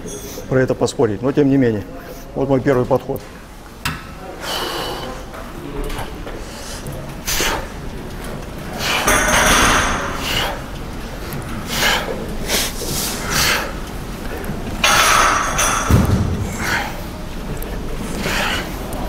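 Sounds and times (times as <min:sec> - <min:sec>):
man breathing hard: 0:06.4 - 0:07.7, 0:08.7 - 0:10.7, 0:11.6 - 0:13.8, 0:16.4 - 0:17.2, 0:18.0 - 0:18.9.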